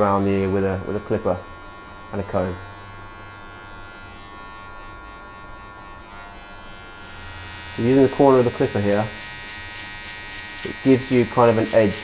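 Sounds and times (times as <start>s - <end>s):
hair clipper buzzing: 0.0s - 12.0s.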